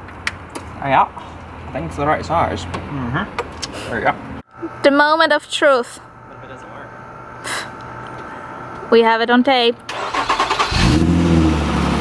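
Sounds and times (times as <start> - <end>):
car starter cranking: 9.9 - 11.4.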